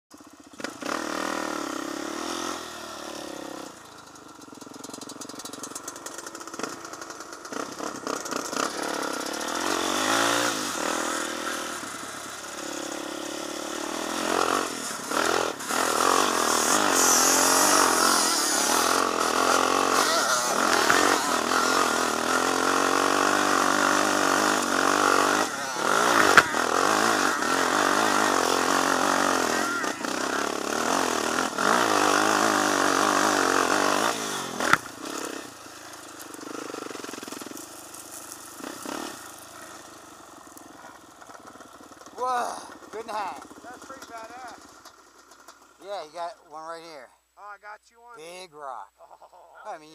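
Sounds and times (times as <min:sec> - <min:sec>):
atv engines revving: 0:00.1 - 0:47.2.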